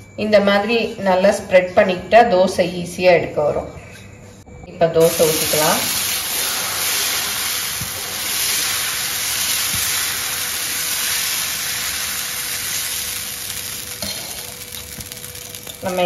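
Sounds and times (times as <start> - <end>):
batter sizzling on hot pan: 5.0 - 16.0.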